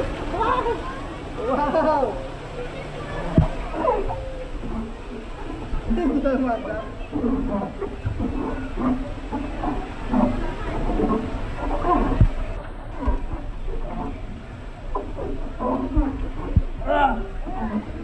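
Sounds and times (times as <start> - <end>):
voices calling out and whooping: 0.0 - 9.2.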